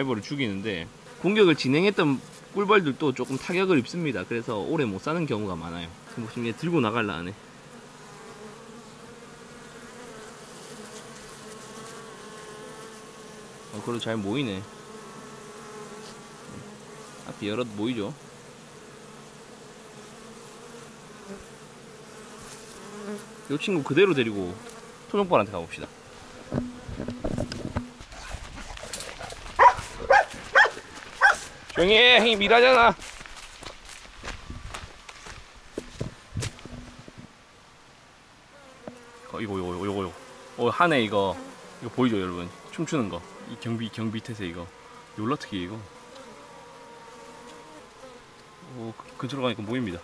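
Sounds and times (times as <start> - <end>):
bees buzzing: 0.0 - 37.8, 38.5 - 50.0
dog barking: 29.2 - 31.5.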